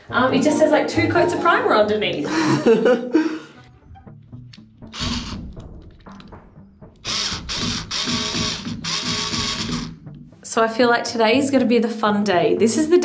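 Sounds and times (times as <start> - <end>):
cordless screwdriver driving screws: 5.0 - 5.5, 7.0 - 9.9.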